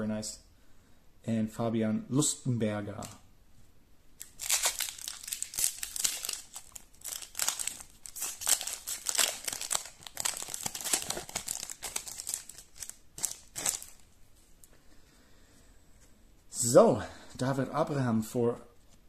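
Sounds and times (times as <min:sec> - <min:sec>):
foil wrapper crinkling and tearing: 0:04.2 - 0:14.0.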